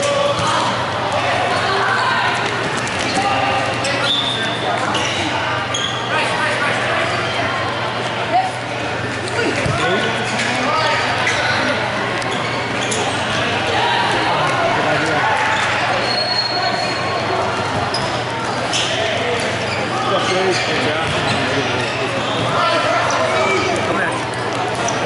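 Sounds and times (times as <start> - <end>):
echoing hubbub of voices: 0.0 - 25.0.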